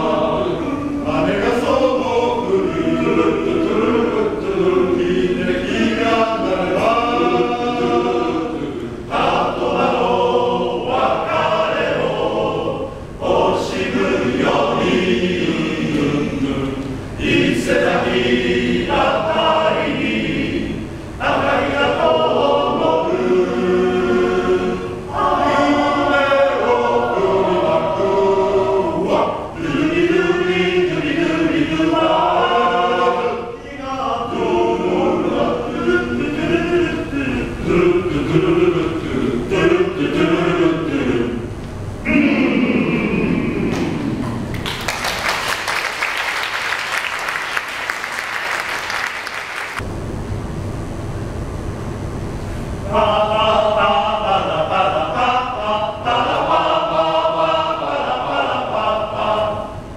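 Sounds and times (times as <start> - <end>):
male choir singing in harmony: 0.0 - 44.2, 52.8 - 59.9.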